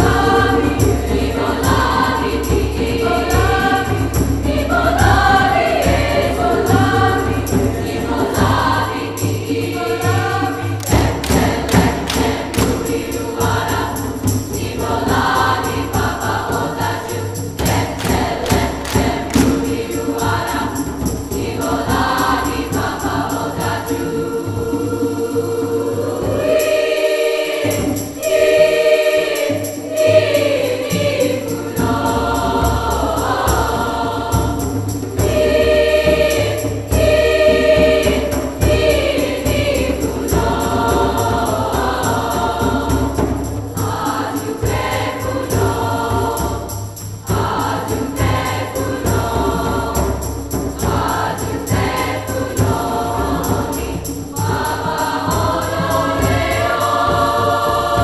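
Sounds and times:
girls' choir singing: 0.0s - 58.0s.

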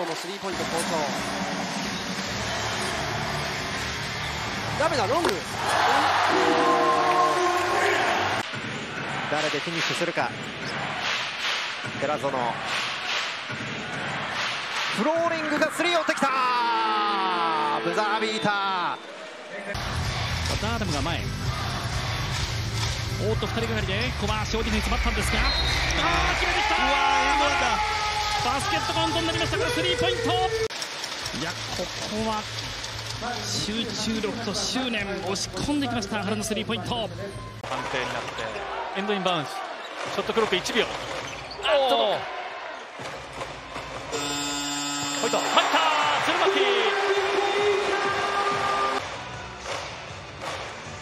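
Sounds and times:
crowd noise with deep rumble: 0.0s - 15.9s, 19.0s - 30.7s
basketball court sounds: 8.3s - 15.8s, 42.4s - 46.5s, 47.2s - 51.0s
shot clock buzzer horn: 44.1s - 45.9s.

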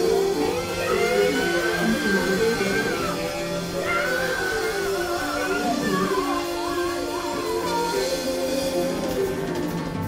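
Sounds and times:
live band with horns and guitar: 0.0s - 10.0s.

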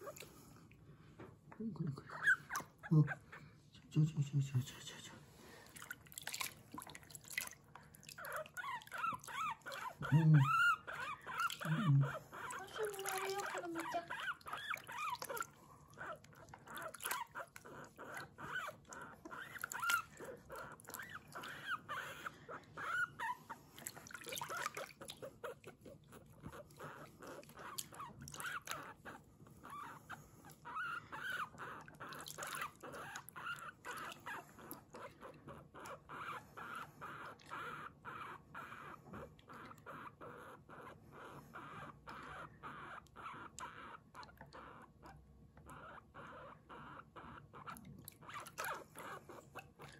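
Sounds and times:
guinea pig squeaking: 2.1s - 3.2s, 8.2s - 49.9s.

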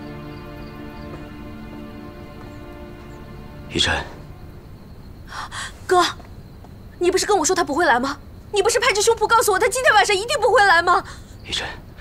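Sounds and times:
woman speaking: 5.3s - 6.2s, 7.0s - 11.2s.

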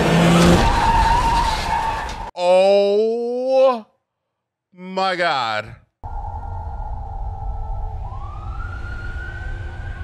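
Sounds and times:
tyres skidding screech: 0.0s - 2.3s.

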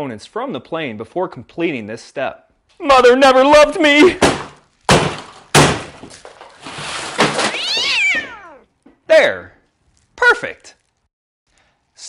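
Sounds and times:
crunching and scattering debris: 4.0s - 8.6s
bat smashing model plane: 4.1s - 8.6s
long high cry falling in pitch: 7.5s - 8.7s.

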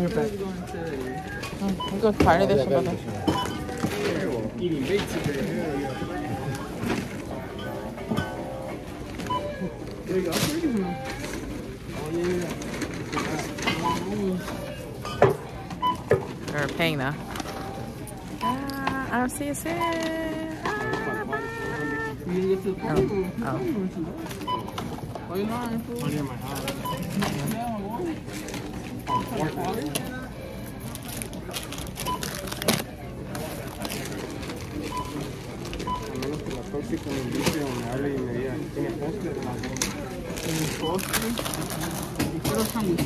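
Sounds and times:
background chatter: 0.0s - 43.0s
murmur of voices: 0.0s - 43.0s
barcode scanner beeping: 1.6s - 3.8s, 7.5s - 11.5s, 13.7s - 23.7s, 29.0s - 30.8s, 34.8s - 36.5s, 40.5s - 41.7s.

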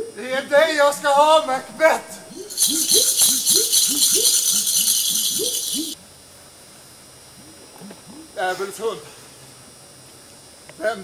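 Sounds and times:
loud rattling shaker: 2.3s - 6.0s
low repeating swooping sound: 2.3s - 6.0s.

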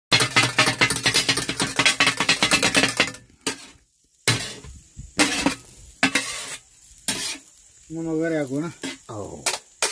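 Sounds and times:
metal blades striking griddle: 0.1s - 6.5s, 9.4s - 9.9s.

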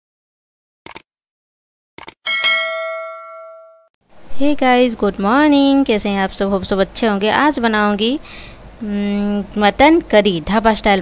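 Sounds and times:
bright bell ding: 2.3s - 3.9s.

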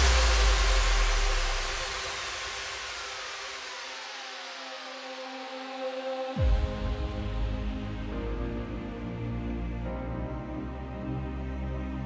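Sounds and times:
deep bass: 0.0s - 3.4s, 6.4s - 12.0s
white-noise wash: 0.0s - 5.2s
synth sweep gliding downward: 0.0s - 6.4s
sustained synth pad: 0.0s - 9.9s.

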